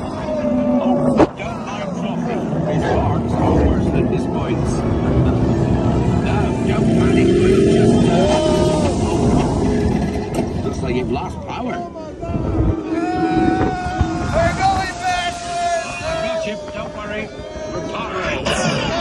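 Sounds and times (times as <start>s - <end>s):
roller coaster rumbling on track: 0.0s - 19.0s
voices: 0.0s - 19.0s.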